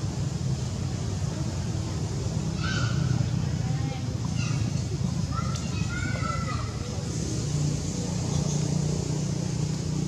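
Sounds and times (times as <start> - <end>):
macaques chirping: 7.9 - 9.3.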